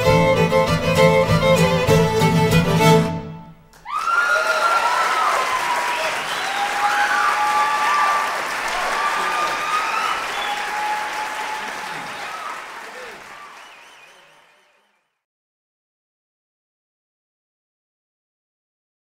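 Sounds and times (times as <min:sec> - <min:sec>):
fiddle tune: 0:00.0 - 0:03.7
audience applauding and cheering: 0:03.7 - 0:15.0.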